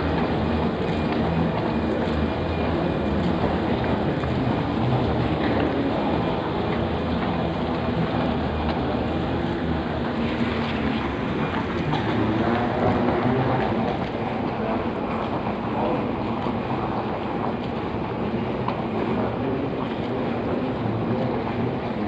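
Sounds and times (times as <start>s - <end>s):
moving walkway rumbling: 0.0s - 22.0s.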